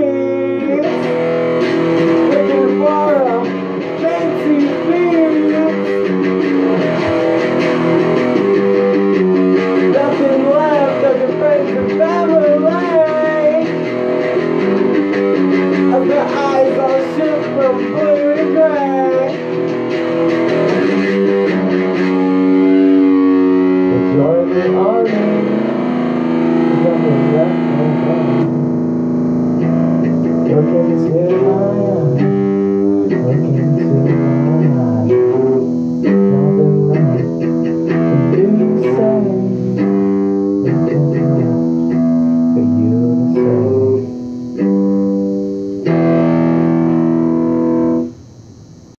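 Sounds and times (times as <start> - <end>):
person singing: 0.0 - 28.9, 29.6 - 48.2
distorted electric guitar chord: 0.0 - 49.0.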